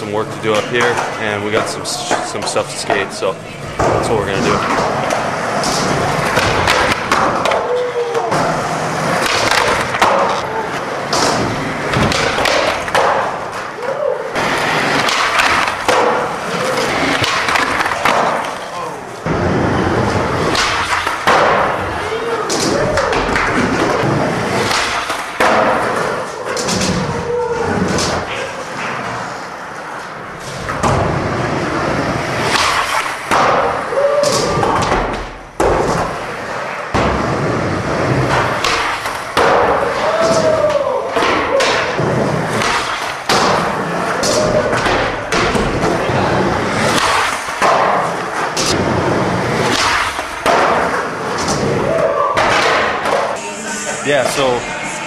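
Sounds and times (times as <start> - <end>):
skateboards rolling on wooden ramps: 0.1 - 53.4
skateboard clacks and thuds: 4.6 - 13.8, 14.4 - 18.6, 19.3 - 29.0, 30.5 - 53.3.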